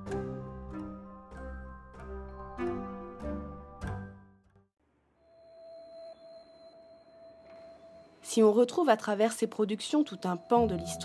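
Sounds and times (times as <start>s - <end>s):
faint high whine: 5.1s - 11.0s.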